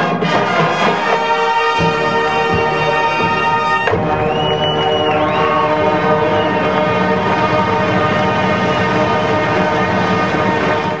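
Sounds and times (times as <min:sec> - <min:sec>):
brass section sustained chord: 0:00.0 - 0:11.0.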